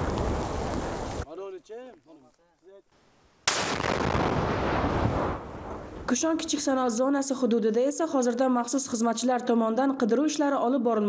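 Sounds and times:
deep bomb blast: 3.5 - 6.1.

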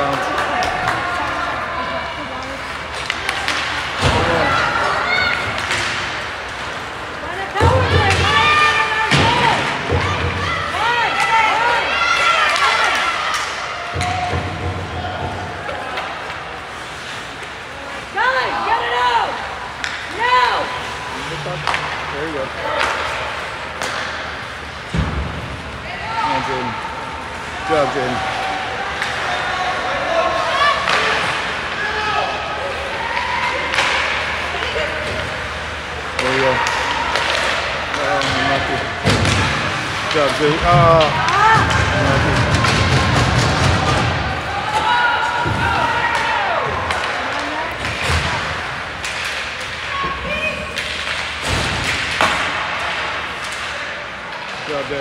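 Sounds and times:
pucks and sticks knocking boards: 2.9 - 10.6, 12.2 - 16.6, 19.7 - 20.2, 20.9 - 25.6, 33.1 - 54.7.

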